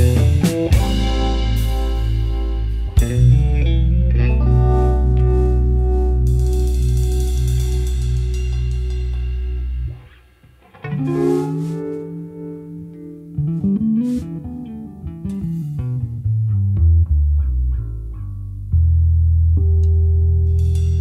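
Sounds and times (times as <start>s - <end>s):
electric guitar chord ringing: 0.0s - 15.8s
bass guitar notes: 0.0s - 21.0s.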